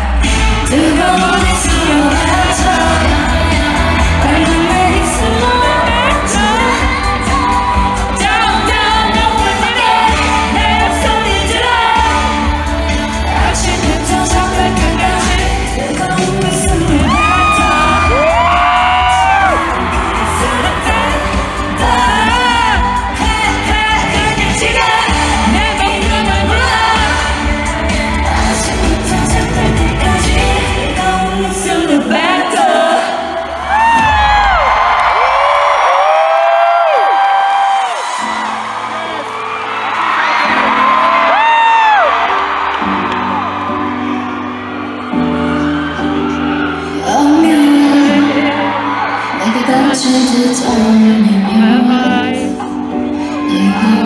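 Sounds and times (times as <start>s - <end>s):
crowd whooping: 0.0s - 12.9s, 16.0s - 25.8s, 33.5s - 54.0s
women singing over pop backing track: 0.0s - 34.2s, 46.8s - 54.0s.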